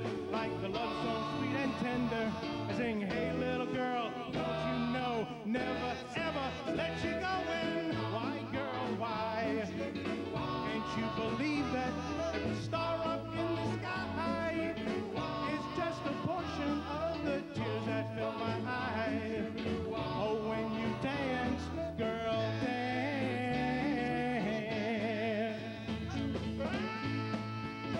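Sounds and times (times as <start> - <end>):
band with electric guitar: 0.0 - 27.9
vocal group singing harmonies: 0.0 - 27.9.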